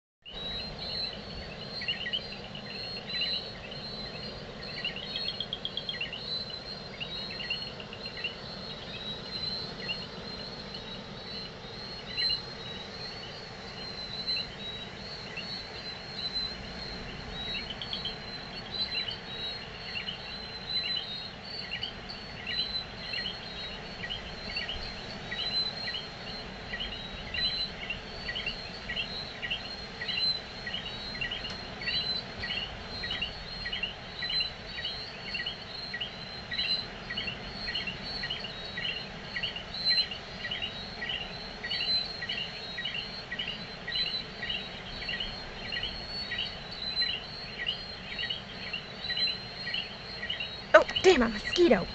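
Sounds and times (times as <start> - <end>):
insects and frogs trilling: 0.3 - 51.9.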